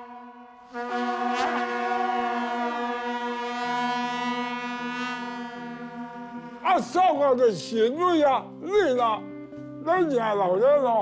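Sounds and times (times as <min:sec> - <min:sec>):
long brass horns: 0:00.0 - 0:07.0.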